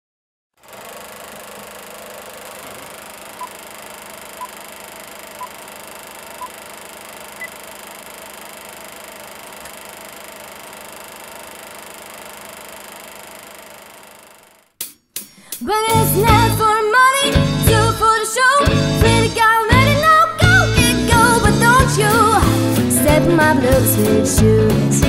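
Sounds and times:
film projector whir: 0:00.6 - 0:14.8.

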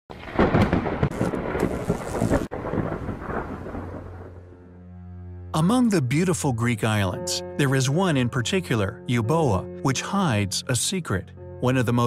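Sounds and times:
rumbling crackling noise: 0:00.1 - 0:06.3.

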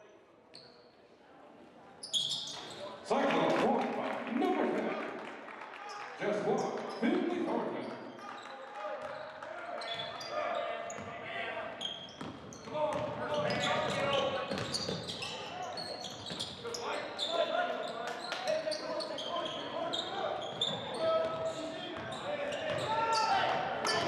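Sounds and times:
sneakers squeaking: 0:02.0 - 0:03.0, 0:06.8 - 0:24.0.

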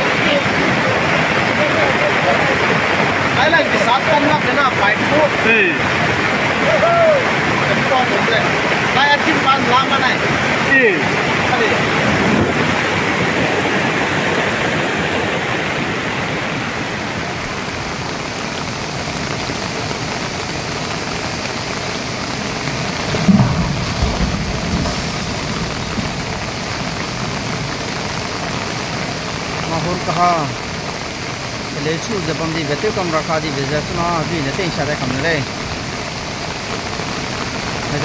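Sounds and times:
heavy rain: 0:00.0 - 0:38.0
river rushing: 0:00.0 - 0:38.0.

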